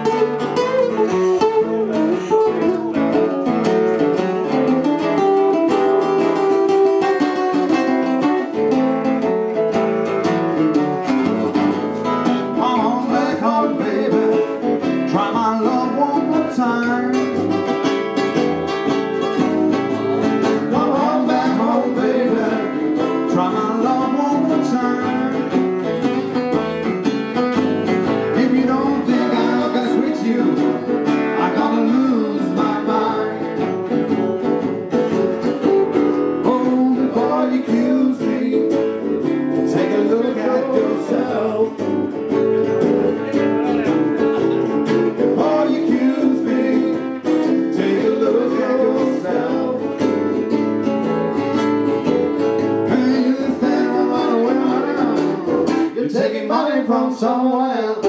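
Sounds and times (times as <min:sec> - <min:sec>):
acoustic guitar blues lead: 0:00.0 - 0:58.0
strummed acoustic guitar rhythm: 0:00.0 - 0:58.0.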